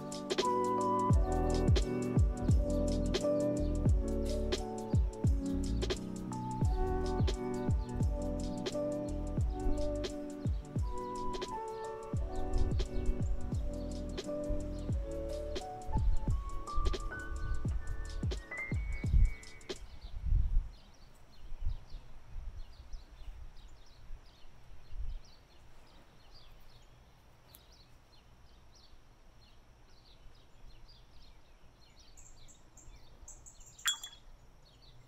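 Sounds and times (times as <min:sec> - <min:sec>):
background music: 0:00.0 - 0:19.9
small birds chirping: 0:00.0 - 0:35.0.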